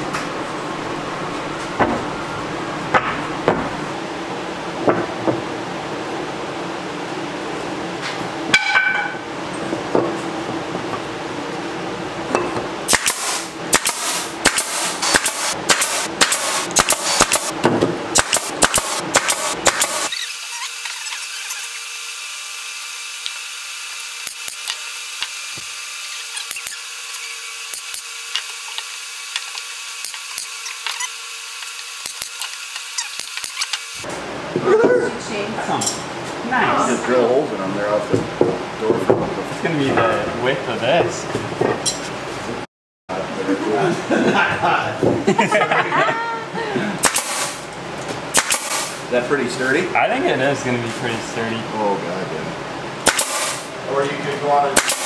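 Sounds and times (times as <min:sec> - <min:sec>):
steady hum: 0:00.0 - 0:22.1
power tool: 0:12.9 - 0:34.1, 0:47.0 - 0:47.7, 0:48.3 - 0:49.0, 0:53.0 - 0:55.0.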